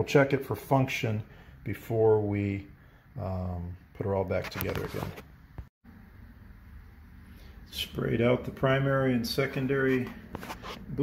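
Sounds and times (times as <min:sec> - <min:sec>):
man speaking: 0:00.0 - 0:05.2, 0:07.7 - 0:10.2.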